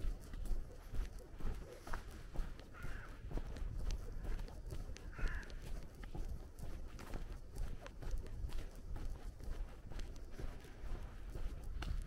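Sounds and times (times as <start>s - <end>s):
footsteps on pavement: 0.0s - 12.0s
crow cawing: 2.7s - 3.3s, 5.0s - 5.7s.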